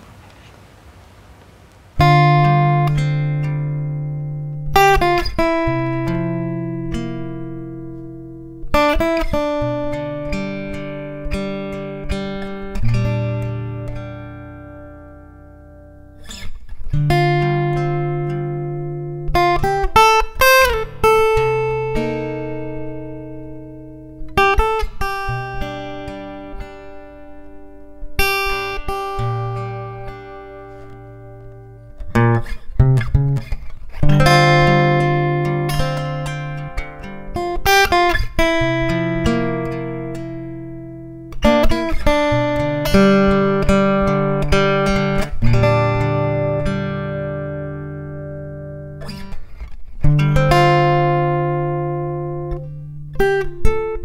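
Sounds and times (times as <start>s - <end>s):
plucked guitar chords: 2.0s - 54.0s.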